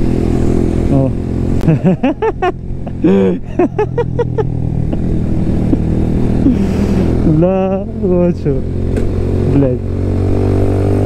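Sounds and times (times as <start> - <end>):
motorcycle engine running: 0.0 - 11.0
man laughing: 1.6 - 7.9.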